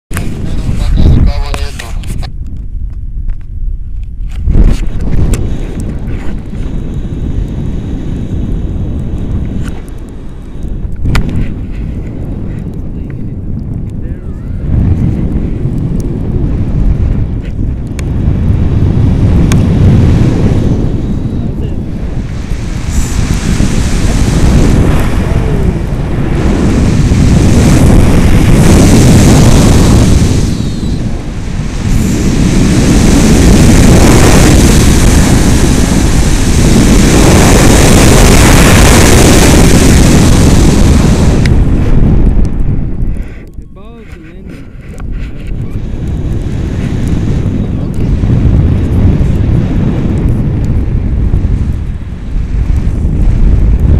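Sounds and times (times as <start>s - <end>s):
wind rushing over microphone: 0.0s - 53.9s.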